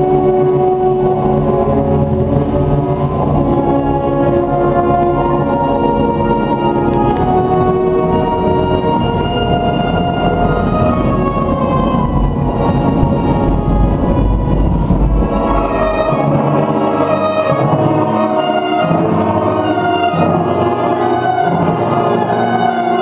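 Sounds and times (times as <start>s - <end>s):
concert wind band playing: 0.0s - 23.0s
deep bass notes: 9.9s - 17.2s.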